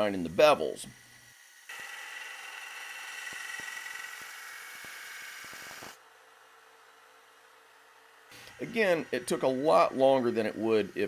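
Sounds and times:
belt grinder grinding steel: 0.4s - 6.0s, 8.3s - 11.0s
faint machine whine: 3.0s - 11.0s.

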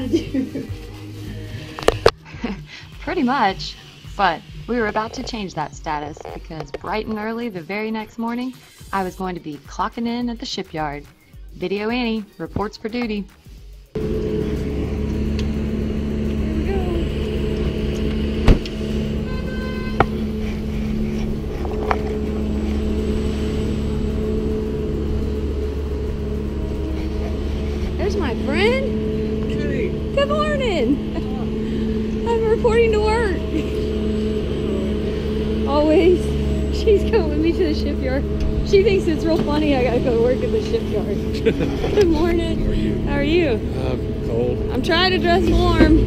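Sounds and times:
low machine hum: 0.0s - 7.4s, 14.0s - 46.0s
engine drone: 0.0s - 9.2s, 13.9s - 46.0s.

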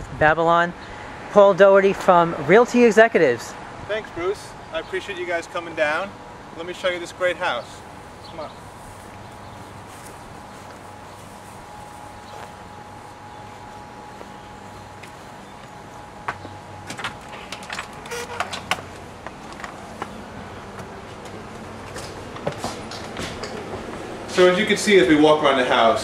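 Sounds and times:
faint steady hum: 3.2s - 26.0s
footsteps and movement: 8.0s - 24.8s.

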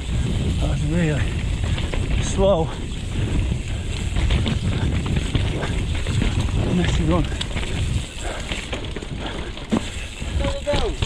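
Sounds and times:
bike knocks and rattles: 0.0s - 11.0s
bike tyres rolling on dirt: 0.0s - 11.0s
wind rumble on microphone: 0.0s - 11.0s.

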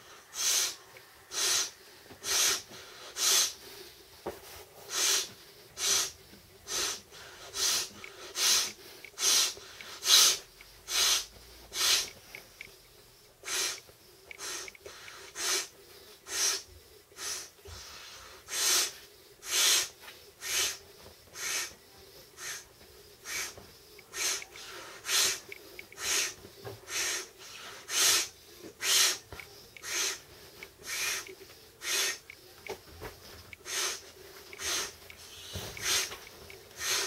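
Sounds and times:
person breathing quickly: 0.0s - 37.0s.

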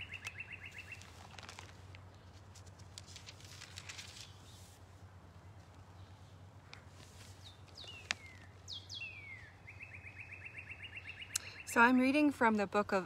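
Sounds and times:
bird trilling: 0.0s - 1.0s, 7.4s - 11.8s
faint bird chirps: 0.0s - 1.1s, 7.3s - 11.8s.

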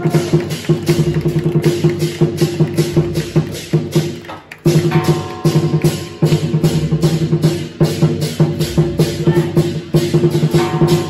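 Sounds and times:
cymbals clashing: 0.0s - 11.0s
fast drum strokes: 0.0s - 11.0s
gongs: 4.8s - 11.0s.

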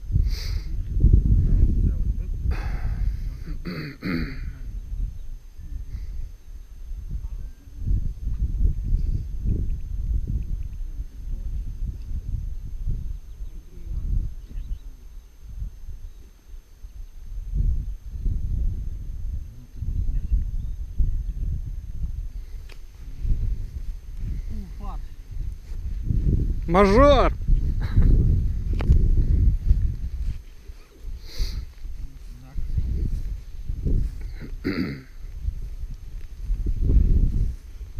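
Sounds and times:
wind buffeting microphone: 0.0s - 3.7s, 4.4s - 37.9s.

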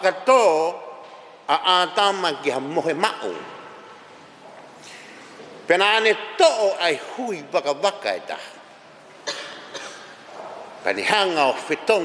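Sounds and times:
man speaking: 0.0s - 3.8s, 5.6s - 8.7s, 10.8s - 12.0s
short cough: 9.2s - 10.2s.

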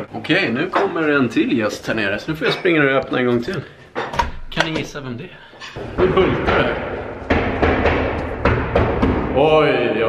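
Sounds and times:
heavy drum-like thumps: 5.8s - 9.6s.

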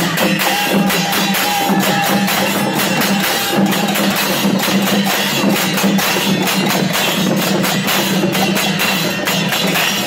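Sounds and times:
drums beating: 0.0s - 10.0s
hand cymbals clashing: 0.0s - 10.0s.

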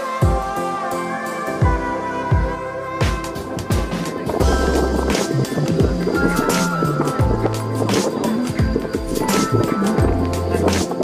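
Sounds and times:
music with beat and deep bass: 0.0s - 11.0s.

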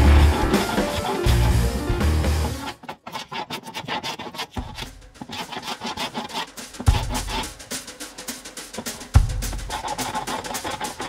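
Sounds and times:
hand plane rasping on wood: 0.0s - 7.5s, 9.6s - 11.0s.

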